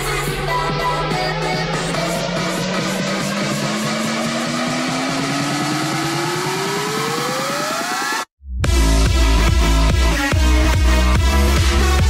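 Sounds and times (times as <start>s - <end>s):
synth riser climbing in pitch: 0.0s - 9.9s.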